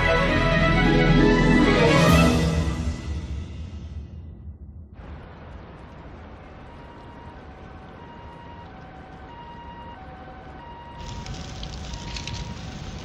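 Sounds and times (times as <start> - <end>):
low rumble: 3.2 - 9.2
fire crackling: 4.9 - 13.0
two-tone siren: 6.6 - 12.8.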